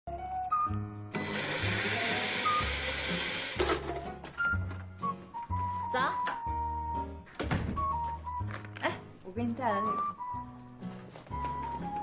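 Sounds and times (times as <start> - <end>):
electric blender whirring: 1.1 - 3.8.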